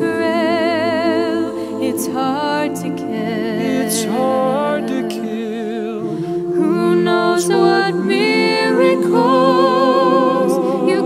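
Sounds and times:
a cappella choir singing chords: 0.0 - 11.0.

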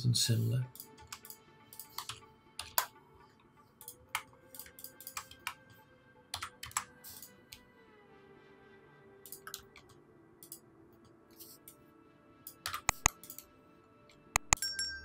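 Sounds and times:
keyboard and mouse clicks: 0.7 - 2.9, 3.8 - 5.6, 6.3 - 7.6, 9.3 - 10.6, 12.5 - 13.4, 14.4 - 14.6.

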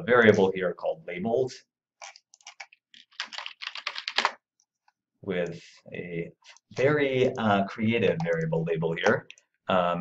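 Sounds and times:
computer keyboard typing: 2.0 - 4.4.

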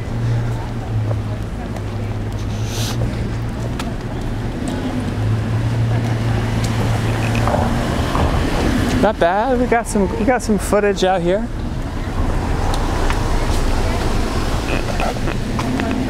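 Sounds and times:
outdoor traffic noise: 0.0 - 16.0.

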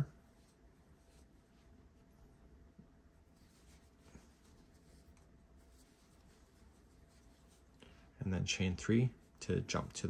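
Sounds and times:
crochet hook rustling yarn: 0.0 - 10.0.

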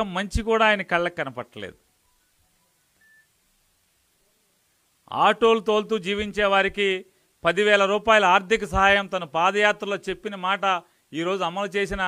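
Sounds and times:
faint high beep: 2.0 - 3.4.

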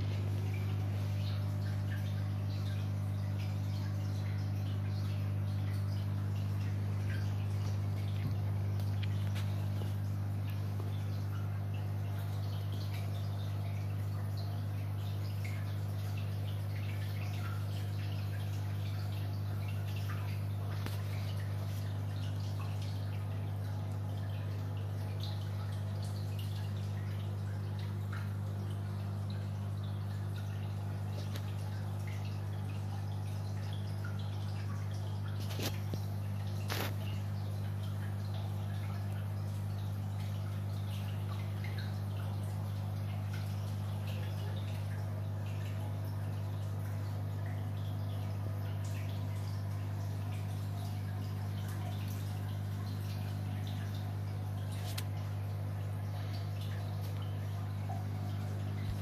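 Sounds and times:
aquarium filter hum: 0.0 - 59.0
water trickling and dripping: 0.0 - 59.0.

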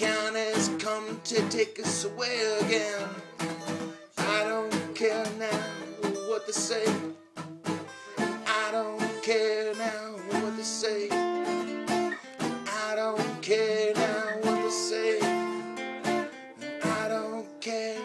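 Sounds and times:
acoustic guitar strumming chords: 0.0 - 18.0.

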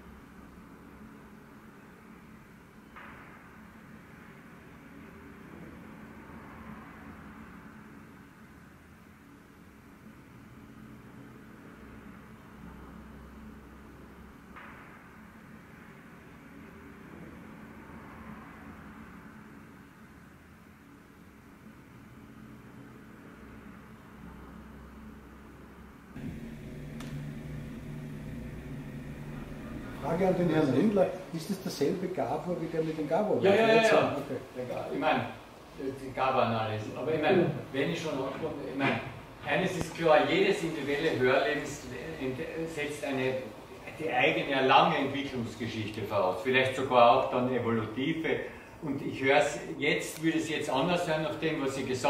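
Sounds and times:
low hum and hiss: 0.0 - 52.0
low hum: 26.2 - 31.6
steady hiss: 26.2 - 52.0.

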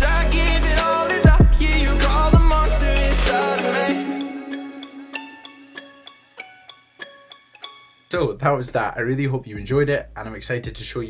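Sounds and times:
bell-like electronic pop melody: 0.0 - 8.1.

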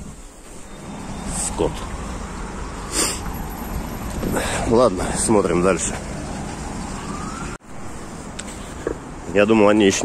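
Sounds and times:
street noise: 0.0 - 10.0
faint siren rising: 0.6 - 4.2, 5.6 - 8.0.

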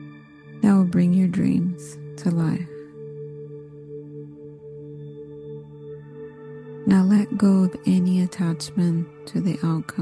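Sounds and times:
ambient meditation music drone: 0.0 - 10.0.

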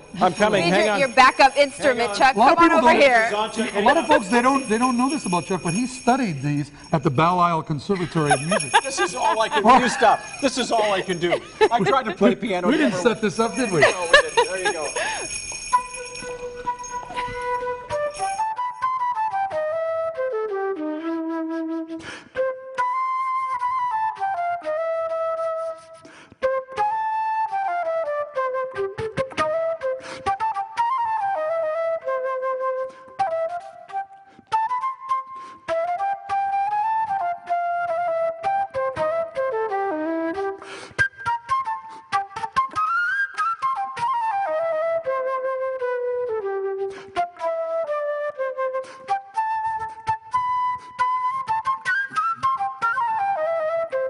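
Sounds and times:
jazz flute melody: 15.0 - 54.0.

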